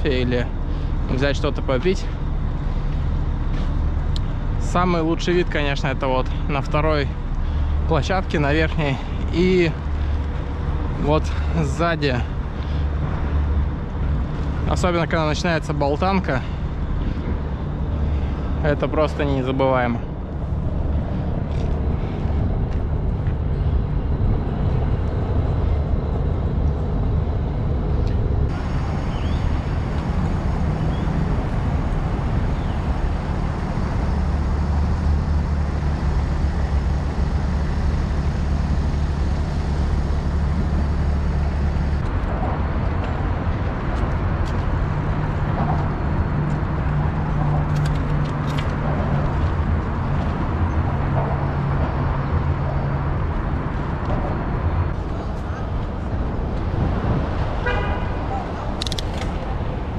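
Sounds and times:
rolling and traffic noise: 0.0s - 59.9s
wind rumble on microphone: 0.0s - 59.9s.

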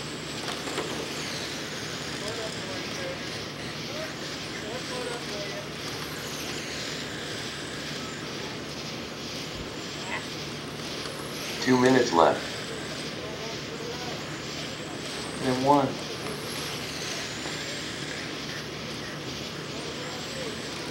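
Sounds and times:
rc car motors whining: 0.0s - 20.9s
steady hiss: 0.0s - 20.9s.

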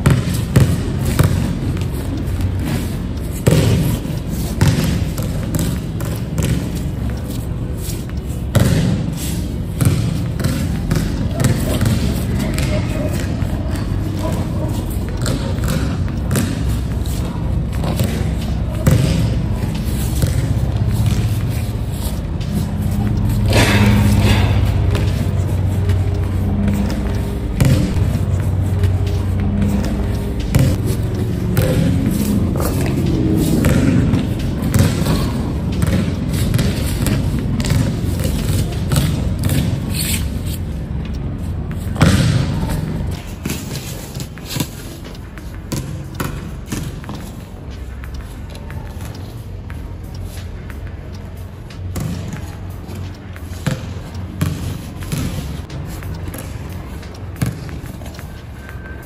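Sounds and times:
basketball bouncing on court floor: 0.0s - 49.9s, 50.5s - 59.0s.

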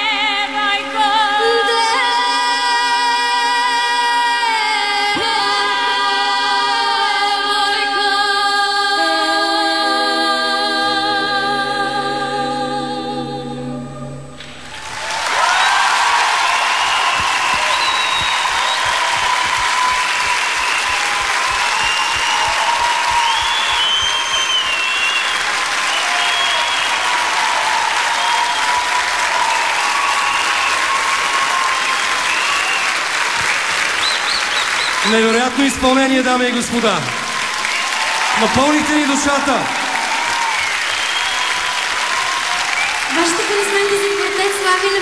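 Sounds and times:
women's a cappella chord: 0.0s - 14.6s
audience applauding: 14.4s - 45.0s
audience cheering: 14.4s - 45.0s.

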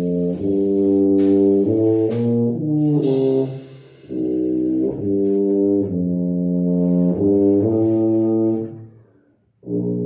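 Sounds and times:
tuba low sustained note: 0.0s - 10.0s.

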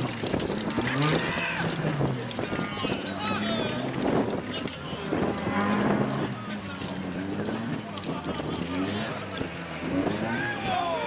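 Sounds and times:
car engine at high revs: 0.0s - 11.0s
spectators shouting: 10.0s - 11.0s.

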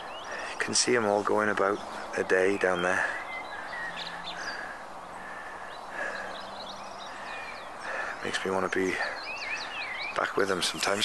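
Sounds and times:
faint bird calls: 0.0s - 11.0s
steady outdoor hush: 0.0s - 11.0s.

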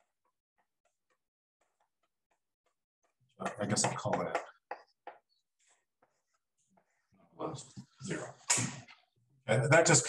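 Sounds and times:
chalk ticking on a blackboard: 0.0s - 7.0s.

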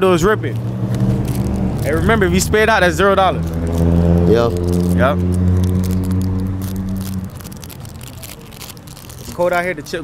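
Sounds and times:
engine humming: 0.0s - 9.3s.

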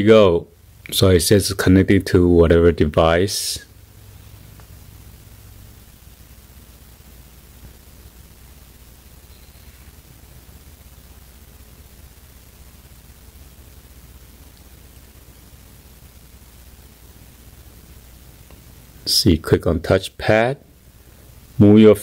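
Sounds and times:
low hum: 0.0s - 19.2s
faint steady hiss: 0.0s - 22.0s.

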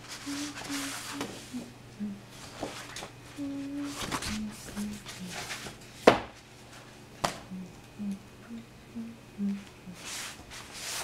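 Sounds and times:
person humming: 0.1s - 2.4s, 3.3s - 5.5s, 7.4s - 10.1s.

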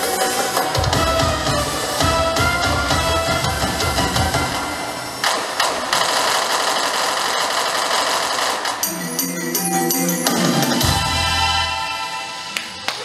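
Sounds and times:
bass and drums: 0.0s - 6.0s, 10.7s - 11.7s.

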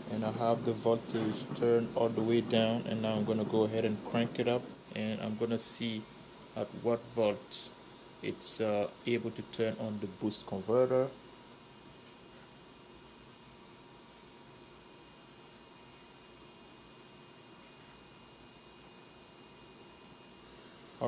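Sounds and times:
faint electronic whines: 0.0s - 21.0s
room hiss: 0.0s - 21.0s.

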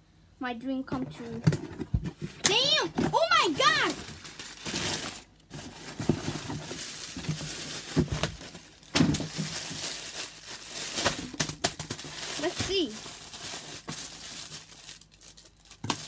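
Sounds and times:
sharp crackles and knocks: 0.9s - 14.7s
packing paper rustling: 1.2s - 16.0s.

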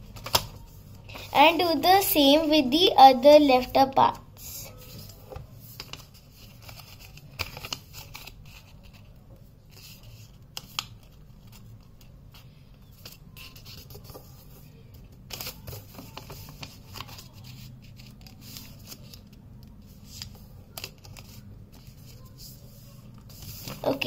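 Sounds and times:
paper rustling and creasing: 4.7s - 24.0s.

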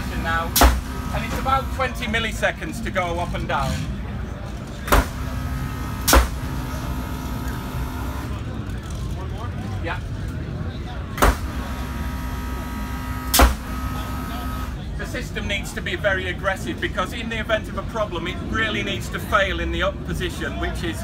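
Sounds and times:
pneumatic actuator clacks: 0.5s - 1.5s, 5.9s - 6.5s, 13.3s - 13.8s.

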